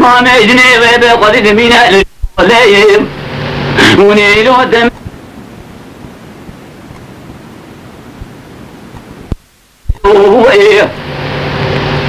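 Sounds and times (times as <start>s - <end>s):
recording background hiss: 0.0s - 12.0s.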